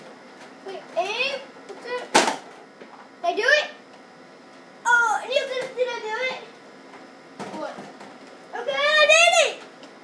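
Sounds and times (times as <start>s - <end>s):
child exclaiming: 4.8s - 6.5s, 8.5s - 9.6s.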